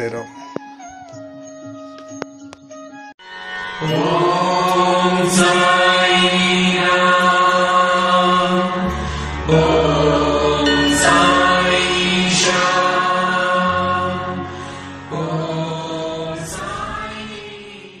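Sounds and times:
steady low drone: 3.4s - 17.4s
voices chanting: 3.8s - 14.5s.

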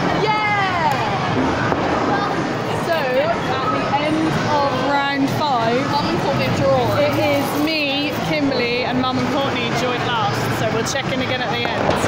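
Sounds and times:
steady background noise: 0.0s - 12.0s
women talking: 2.8s - 12.0s.

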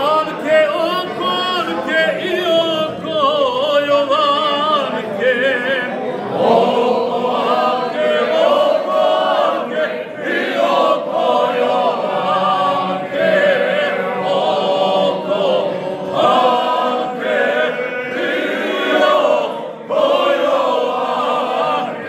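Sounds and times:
group singing in harmony: 0.0s - 22.0s.

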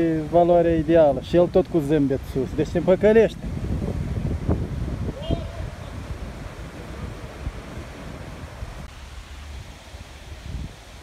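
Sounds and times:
outdoor hiss: 0.0s - 11.0s
wind buffeting microphone: 0.0s - 11.0s.

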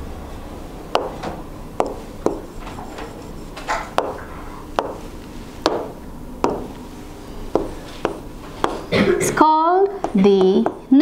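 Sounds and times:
pen tapping on glass screen: 1.0s - 1.2s, 1.8s - 4.2s, 4.8s - 5.0s, 5.7s - 6.7s, 7.6s - 8.8s.

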